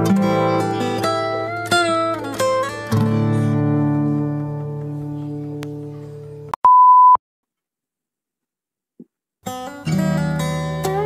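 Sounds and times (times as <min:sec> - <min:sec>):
steady beep: 0:06.6 - 0:07.2.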